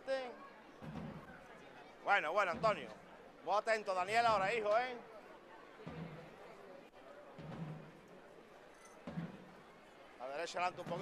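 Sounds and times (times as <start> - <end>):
faint crowd haze: 0.0 - 11.0
muffled drum beats: 0.8 - 1.3, 2.4 - 3.0, 4.2 - 4.6, 5.8 - 6.4, 7.4 - 8.0, 9.1 - 9.6.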